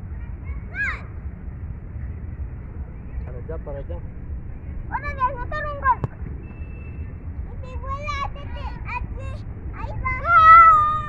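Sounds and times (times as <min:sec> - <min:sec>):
steady low rumble: 0:00.0 - 0:11.0
children calling out: 0:07.6 - 0:11.0.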